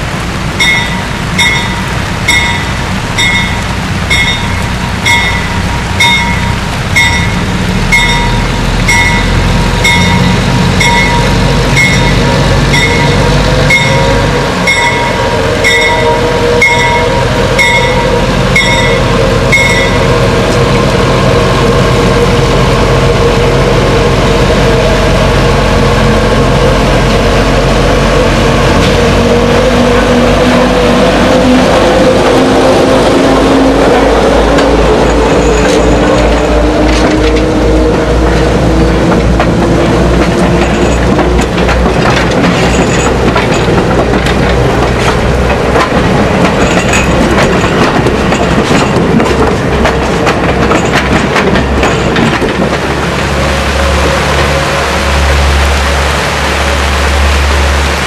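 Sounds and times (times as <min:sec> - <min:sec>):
diesel locomotive engine drone: 0:00.0 - 0:58.0
locomotive bell ringing: 0:00.6 - 0:20.3.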